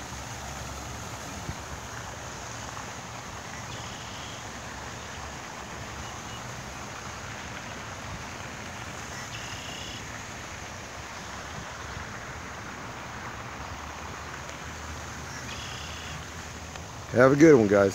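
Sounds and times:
bird calling: 3.6 - 4.4, 15.2 - 16.3.

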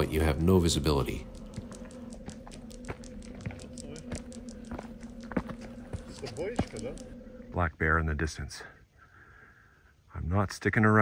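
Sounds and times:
steady low hum: 0.0 - 10.1
faint ticks: 0.8 - 7.2
footsteps on rocky ground: 1.3 - 7.2.

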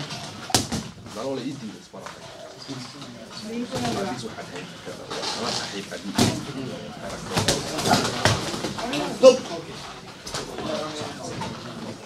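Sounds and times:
boxing gloves smacking: 0.3 - 1.1, 7.3 - 9.0
people talking: 1.1 - 12.0.

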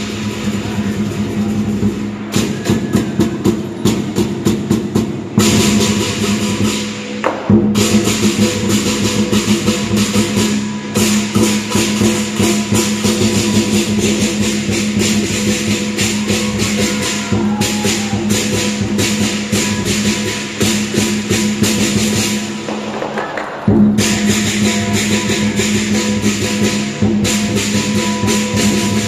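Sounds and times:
gong: 0.0 - 22.7, 23.9 - 29.0
big drum beating: 0.0 - 29.0
clashing cymbals: 0.0 - 29.0.

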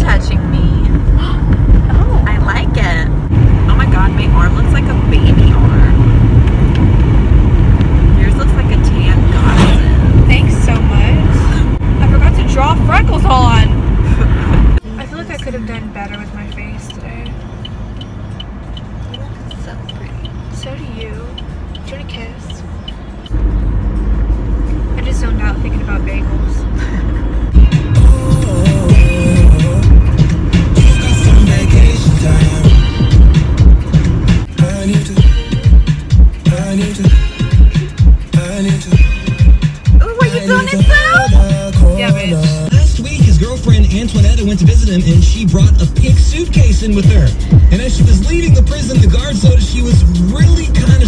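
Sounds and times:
car road rumble: 0.0 - 51.0
voices: 14.8 - 17.5, 19.0 - 22.7, 40.0 - 51.0
music playing: 24.0 - 51.0.

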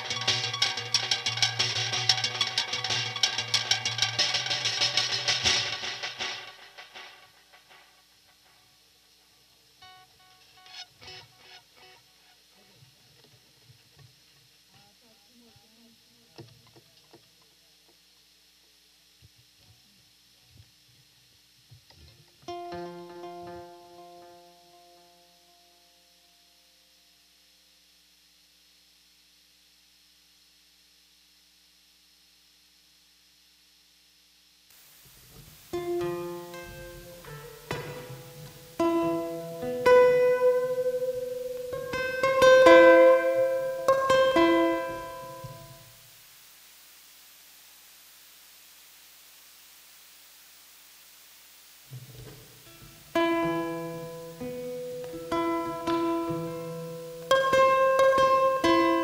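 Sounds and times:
fingerpicked acoustic guitar: 0.0 - 7.8, 9.8 - 15.7, 21.7 - 26.6, 35.2 - 46.0, 51.9 - 59.0
faint voice: 14.7 - 17.8.

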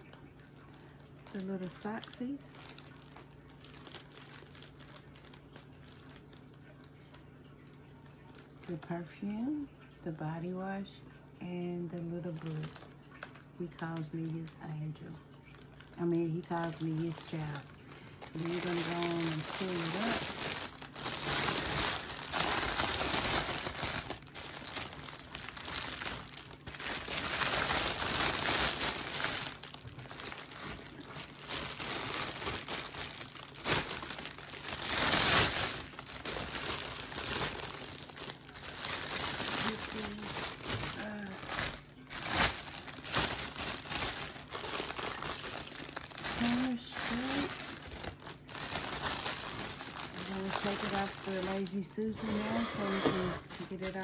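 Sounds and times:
cellophane crinkling: 0.0 - 9.1, 11.5 - 54.0.

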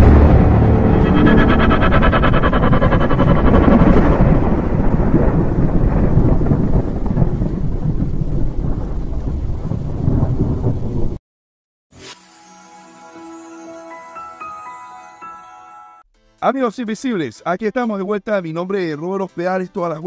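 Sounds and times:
rolling thunder rumble: 0.0 - 11.2
thunder crackle: 0.0 - 11.2.

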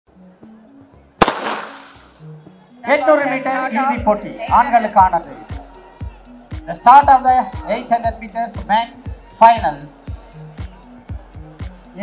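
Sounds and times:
starting pistol crack: 1.2 - 2.1.

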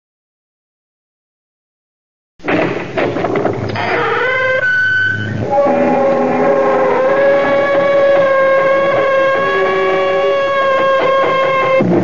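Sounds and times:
door creaking: 2.4 - 12.0
eerie droning theme music: 3.8 - 12.0.

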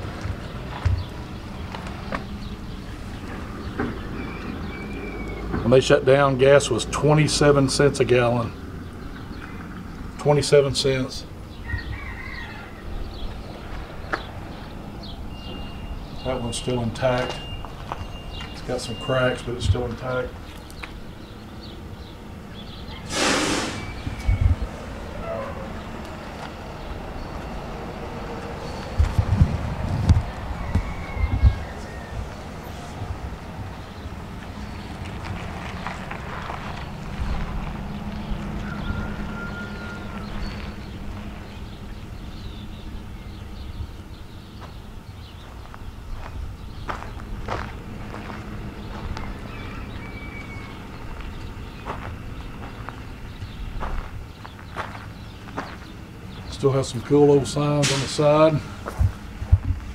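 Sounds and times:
wind rumbling on microphone: 19.6 - 56.5, 58.6 - 59.9
brief loud hiss: 23.1 - 24.0.

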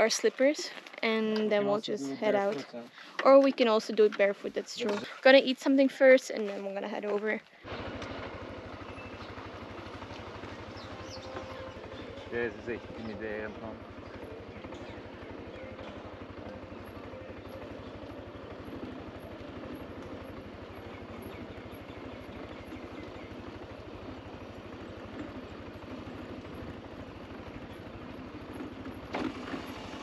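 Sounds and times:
motor scooter engine: 7.6 - 30.0
wind and road noise: 13.8 - 30.0.

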